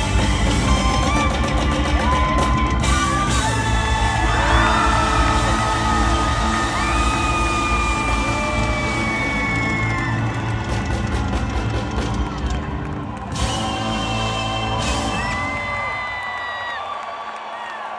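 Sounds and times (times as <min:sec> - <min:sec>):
live rock band playing: 0:00.0 - 0:15.8
long held high notes: 0:00.0 - 0:16.0
crowd whooping and yelling: 0:00.0 - 0:17.9.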